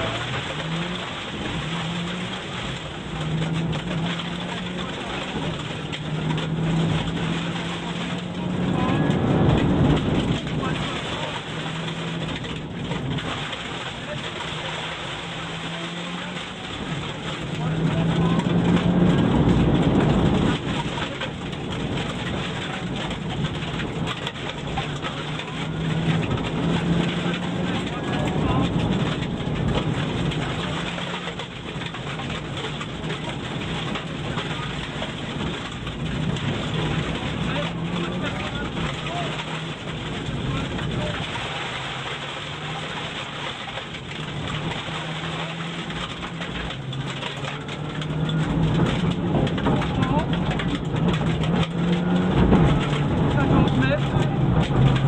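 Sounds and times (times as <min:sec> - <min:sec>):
rally car engine revving: 0:00.0 - 0:55.0.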